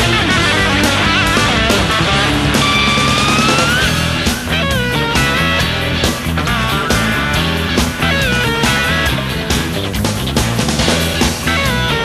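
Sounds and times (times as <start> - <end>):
instrumental rock music: 0.0 - 12.0
lead electric guitar bending notes: 0.0 - 12.0.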